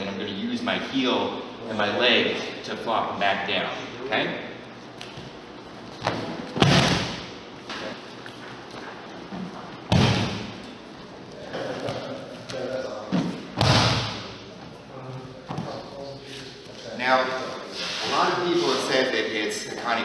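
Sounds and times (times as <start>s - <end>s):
bodies thudding on judo mats: 6.0s - 7.3s.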